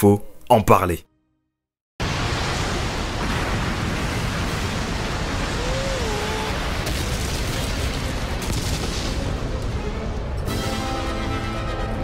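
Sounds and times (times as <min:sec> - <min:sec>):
surging water rushing: 0:02.0 - 0:07.2.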